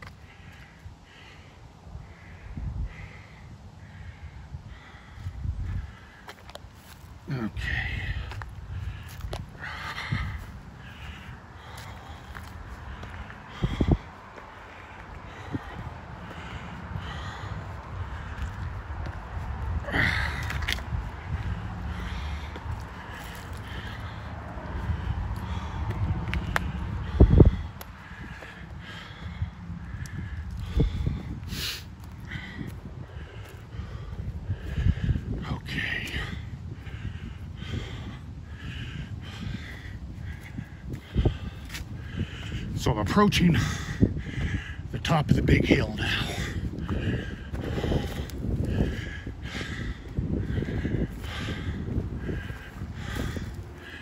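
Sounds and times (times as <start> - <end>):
man breathing hard: 0.0 - 54.0
low rumble: 7.3 - 42.7.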